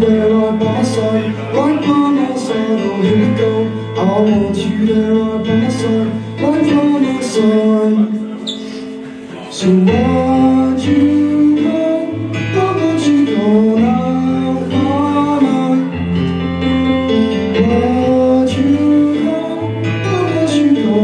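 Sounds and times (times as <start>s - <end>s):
live song with bass and melody: 0.0s - 21.0s.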